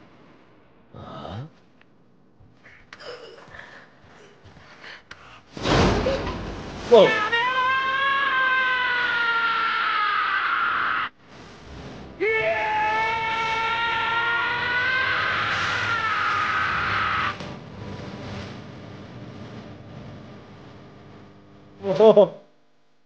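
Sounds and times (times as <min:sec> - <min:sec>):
high-pitched screaming voices: 0:06.9 - 0:11.2, 0:12.2 - 0:17.4.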